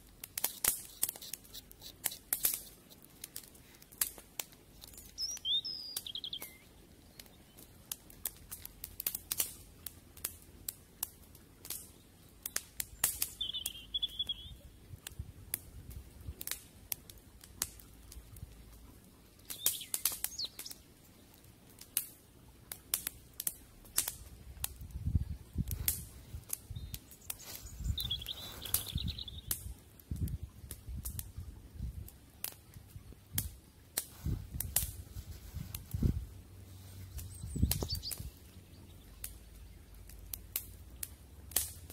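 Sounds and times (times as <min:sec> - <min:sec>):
wood fire crackling and popping: 0:00.0 - 0:41.9
small bird chirping: 0:04.7 - 0:07.8, 0:12.9 - 0:14.6, 0:19.4 - 0:20.8, 0:26.6 - 0:29.6, 0:36.8 - 0:39.7.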